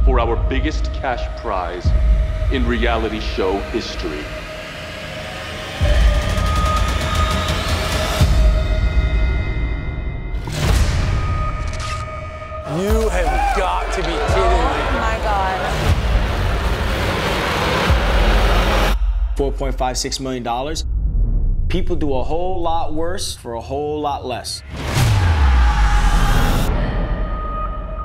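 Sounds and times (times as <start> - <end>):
deep rumble: 14.0 - 23.4.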